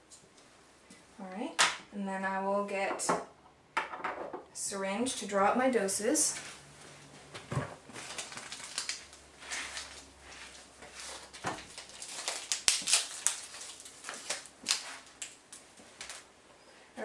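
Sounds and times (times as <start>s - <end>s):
plastic wrapper crinkling: 7.8s - 16.3s.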